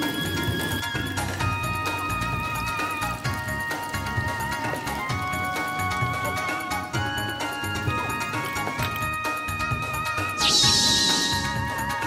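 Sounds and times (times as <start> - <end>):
background music: 0.0 - 12.0
high-pitched wavering sound effect: 10.4 - 11.7.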